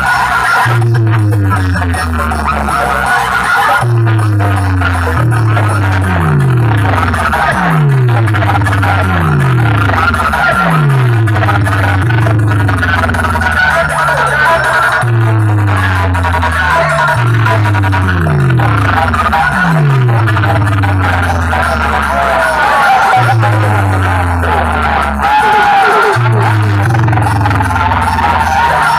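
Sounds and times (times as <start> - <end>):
deep sliding bass line: 0.0 - 28.9
loud dance music: 0.0 - 28.9.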